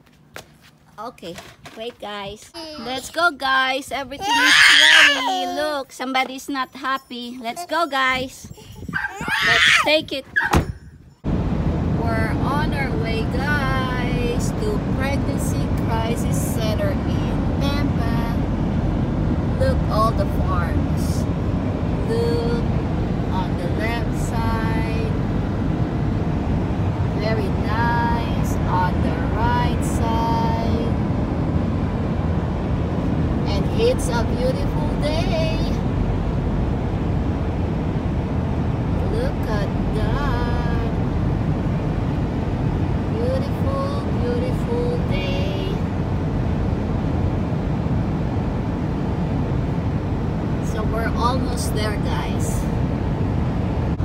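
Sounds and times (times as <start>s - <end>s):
car road and engine rumble: 0.0s - 54.0s
high-pitched voice: 2.5s - 3.1s, 4.1s - 5.9s, 7.0s - 10.4s.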